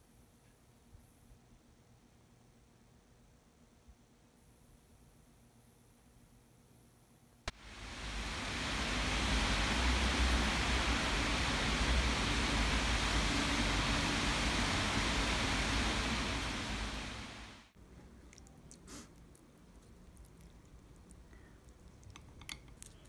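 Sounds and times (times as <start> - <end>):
low rumble: 7.5 - 17.8
rushing outdoor noise: 7.5 - 17.8.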